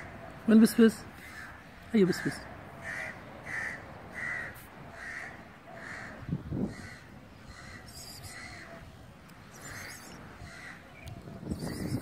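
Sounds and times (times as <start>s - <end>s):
bird harsh calls: 1.2s - 12.0s.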